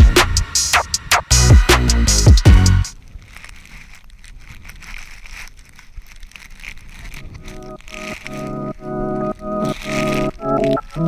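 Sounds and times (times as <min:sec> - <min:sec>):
music with pulsing chords: 0:00.0 - 0:02.9.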